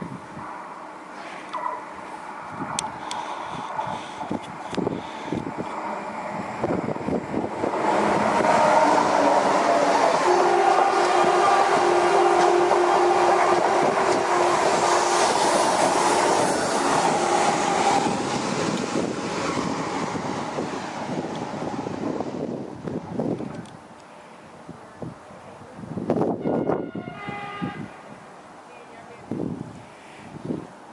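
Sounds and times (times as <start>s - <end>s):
train passing at speed: 0.0s - 23.4s
wheel and rail noise: 0.3s - 26.8s.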